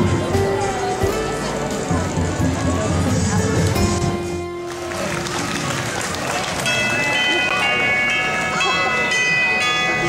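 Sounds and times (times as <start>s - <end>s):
crowd chatter: 0.0s - 10.0s
parade music: 0.0s - 10.0s.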